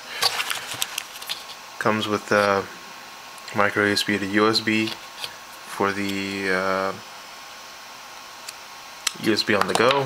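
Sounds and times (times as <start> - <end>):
plastic packaging crinkling: 0.1 - 1.6.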